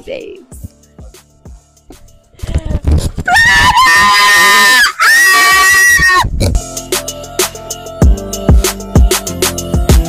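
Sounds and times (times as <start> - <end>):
person screaming excitedly: 3.3 - 6.3.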